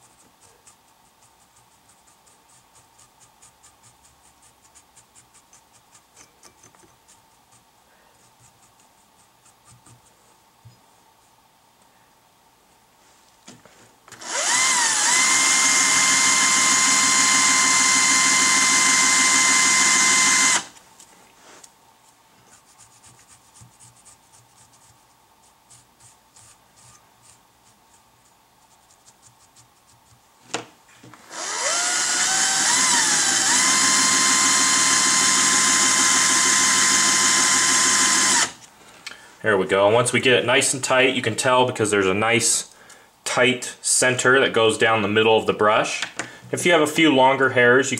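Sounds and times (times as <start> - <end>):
faint scratches of brushing: 0.0 - 11.5, 12.9 - 14.0, 20.8 - 31.1
drill click: 14.1 - 20.8, 31.2 - 38.6
electric hand drill whining: 14.1 - 20.8, 31.2 - 38.6.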